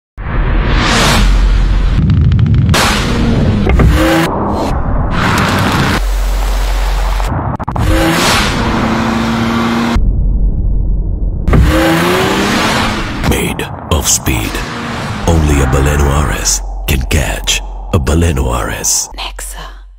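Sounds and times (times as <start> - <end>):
car engine revving: 0.6 - 10.0, 11.5 - 18.2.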